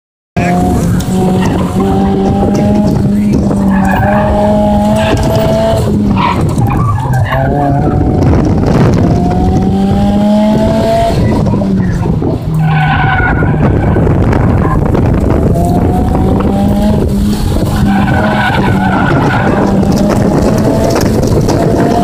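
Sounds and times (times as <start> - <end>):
tires squealing: 0.4 - 9.0, 10.8 - 22.0
car engine revving: 0.4 - 22.0.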